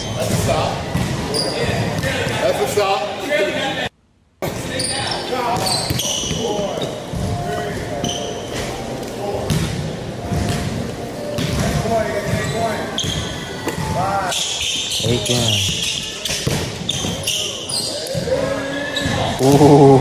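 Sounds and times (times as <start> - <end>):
sneakers squeaking on floor: 0.0 - 2.4, 4.6 - 9.6, 11.3 - 19.4.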